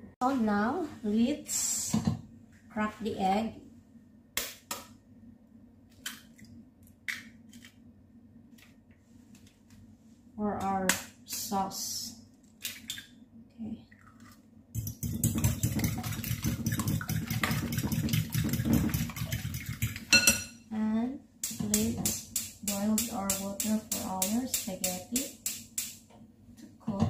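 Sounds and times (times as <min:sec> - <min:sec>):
person talking: 0:00.2 - 0:02.0, 0:20.7 - 0:25.3
fork beating eggs in glass bowl: 0:14.8 - 0:20.3.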